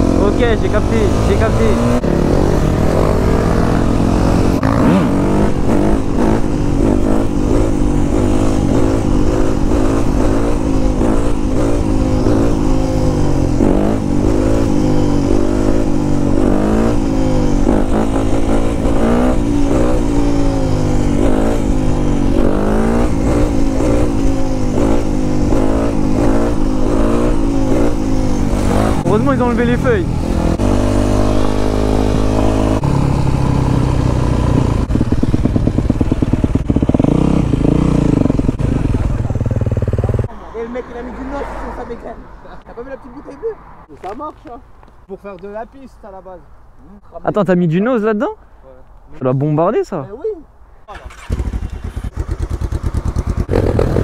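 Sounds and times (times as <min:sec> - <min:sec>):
dirt bike engine revving: 0:00.0 - 0:40.3, 0:50.9 - 0:54.0.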